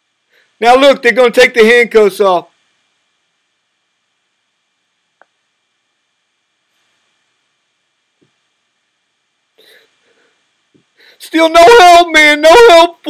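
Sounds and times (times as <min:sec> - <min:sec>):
faint hiss: 0:00.0 - 0:11.6.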